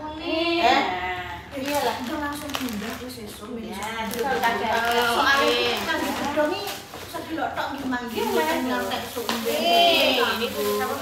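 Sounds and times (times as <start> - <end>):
women chatting: 0.0 - 11.0
plastic wrapping crinkling: 1.5 - 11.0.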